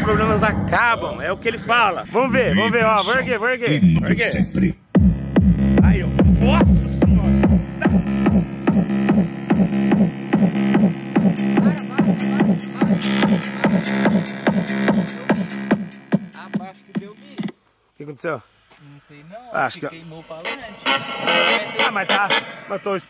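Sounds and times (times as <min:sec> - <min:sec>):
deep bass from subwoofers: 0:00.0 - 0:17.6, 0:19.9 - 0:23.0
song with heavy beat and vocals: 0:04.3 - 0:17.1, 0:20.3 - 0:22.9.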